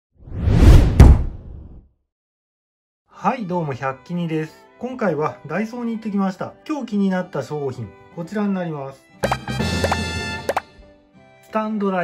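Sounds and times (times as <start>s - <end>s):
loud whoosh: 0.2s - 1.8s
sharp impact hit: 0.7s - 1.7s.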